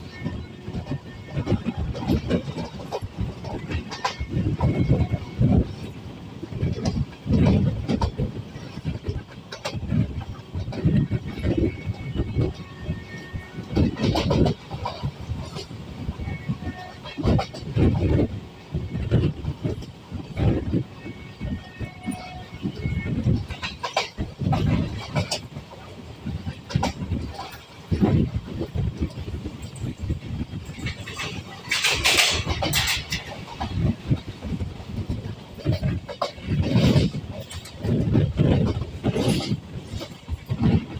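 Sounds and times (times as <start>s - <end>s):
train rumbling on track: 0.0s - 40.9s
wind buffeting: 0.0s - 40.9s.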